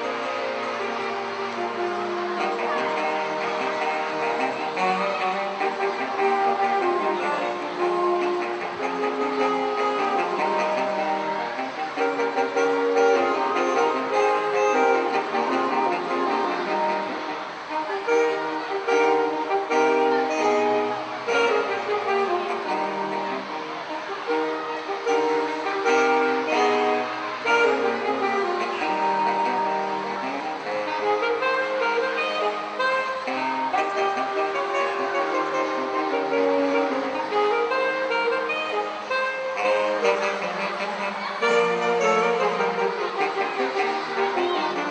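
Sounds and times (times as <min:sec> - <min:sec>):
saxophone quartet playing: 0:00.0 - 0:44.9.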